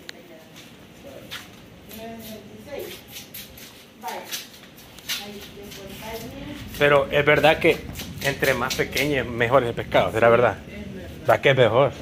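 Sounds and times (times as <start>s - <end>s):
indistinct voices talking: 5.1s - 11.7s.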